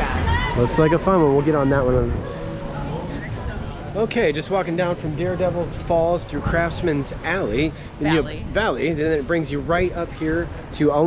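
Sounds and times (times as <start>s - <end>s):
steady low rumble: 0.0s - 10.7s
faint distant voices: 0.0s - 11.0s.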